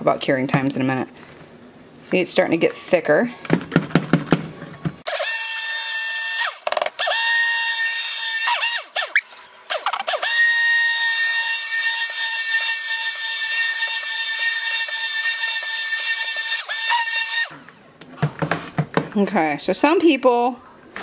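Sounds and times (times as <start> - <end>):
stick blender motor whining: 5.1 - 17.5.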